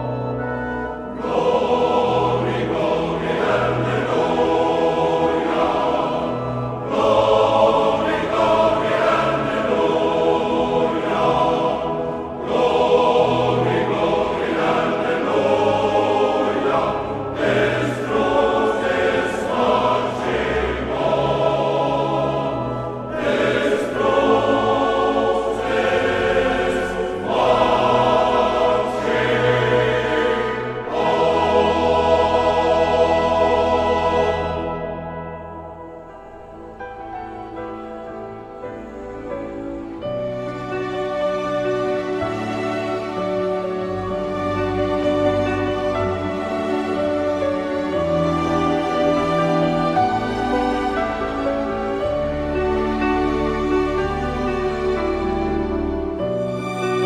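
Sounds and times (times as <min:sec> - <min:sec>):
choir singing: 0:00.0 - 0:57.0.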